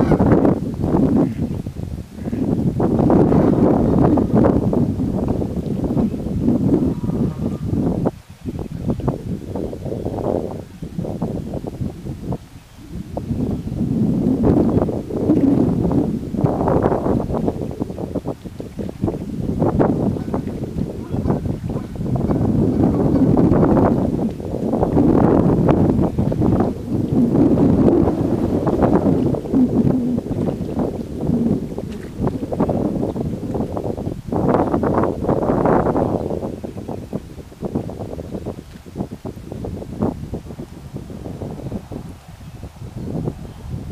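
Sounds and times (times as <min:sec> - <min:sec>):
wind buffeting microphone: 0:00.0 - 0:43.9.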